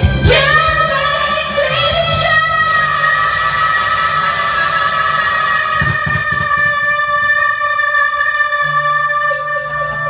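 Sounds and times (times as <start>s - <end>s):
instrumental music with long held notes: 0.0s - 10.0s
low bass pulsing: 0.1s - 8.9s.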